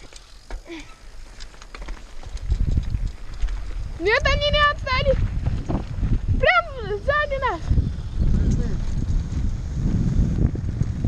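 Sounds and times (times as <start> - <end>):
bike clicks and rattles: 0.0 - 6.3, 7.8 - 11.0
wind and tyre rumble: 0.0 - 11.0.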